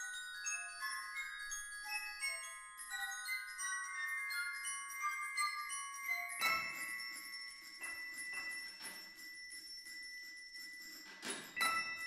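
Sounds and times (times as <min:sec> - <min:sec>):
bell-like metal percussion: 0:00.0 - 0:12.0.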